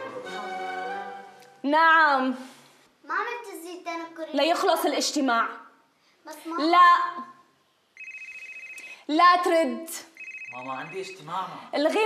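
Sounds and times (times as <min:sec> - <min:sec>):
telephone ringing: 0:08.0 - 0:09.0, 0:10.1 - 0:11.4.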